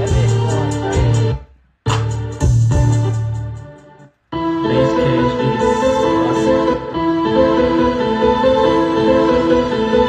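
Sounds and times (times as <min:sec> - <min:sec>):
deep bass: 0:00.0 - 0:03.7
sustained keyboard chords: 0:00.0 - 0:10.0.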